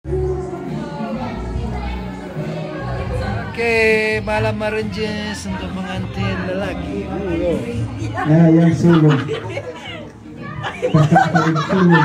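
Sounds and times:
music playing: 0.0 - 12.0
people talking indistinctly: 0.1 - 12.0.

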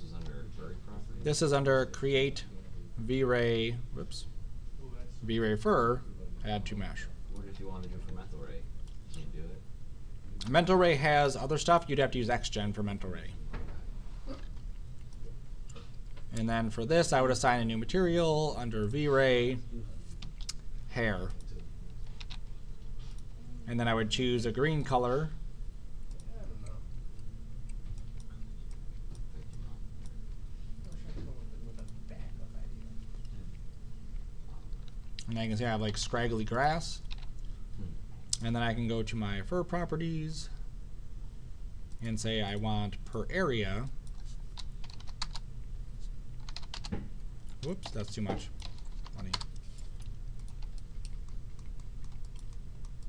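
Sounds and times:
low room hum: 0.0 - 53.0
keyboard typing: 37.0 - 37.5, 44.0 - 45.5, 46.4 - 53.0
computer mouse clicks: 46.4 - 53.0.

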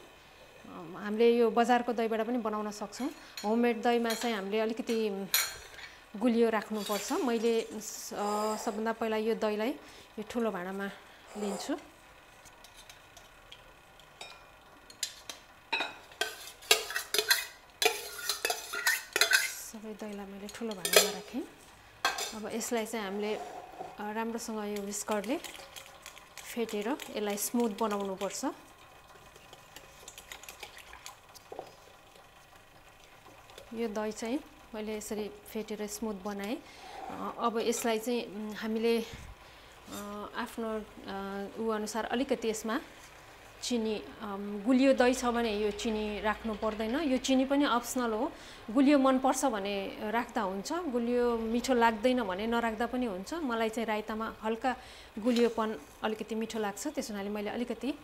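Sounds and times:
woman speaking: 0.7 - 5.3, 6.2 - 11.9, 19.6 - 21.6, 22.3 - 25.4, 26.5 - 28.6, 33.7 - 39.2, 39.9 - 42.9, 43.6 - 58.0
metal kitchen utensils clinking: 14.2 - 19.7, 20.4 - 21.4, 22.0 - 22.5.

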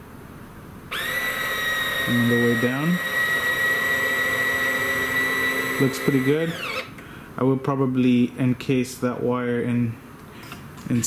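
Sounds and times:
landing gear motor whine: 0.9 - 6.9.

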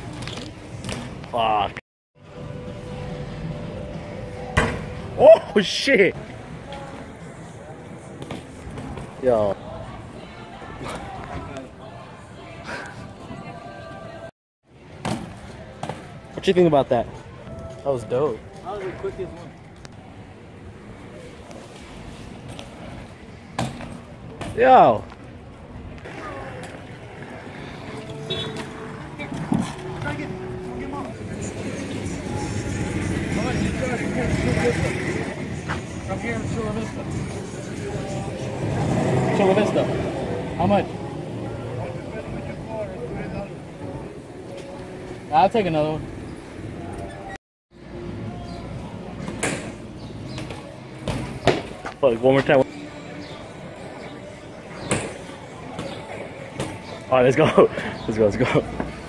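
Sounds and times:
outdoor background noise: 0.0 - 59.0.

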